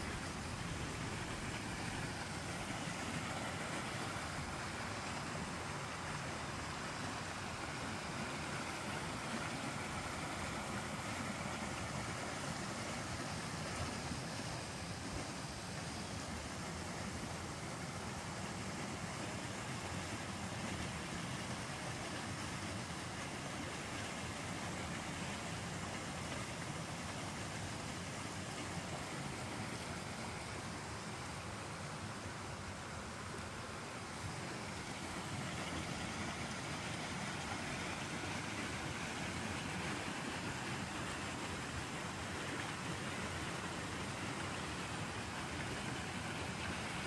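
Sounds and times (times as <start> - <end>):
creek flowing over rocks: 0.0 - 47.0.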